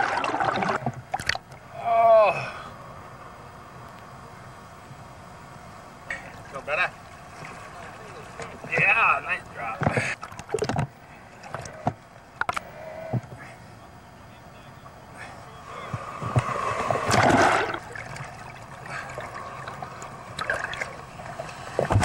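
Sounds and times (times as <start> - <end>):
ocean water sloshing: 15.7 - 22.0
loud water splashes: 16.0 - 19.7.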